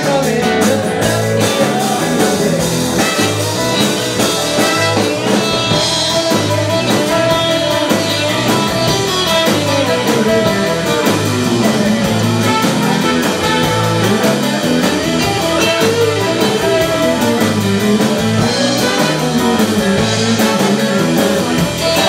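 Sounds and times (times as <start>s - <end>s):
bass guitar: 0.0s - 22.0s
drums: 0.0s - 22.0s
electric guitar lead: 0.0s - 22.0s.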